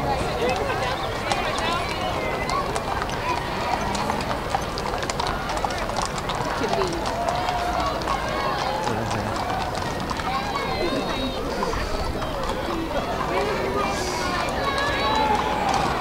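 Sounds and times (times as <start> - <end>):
crowd voices: 0.0 - 16.0
horse hooves on brick: 0.0 - 16.0.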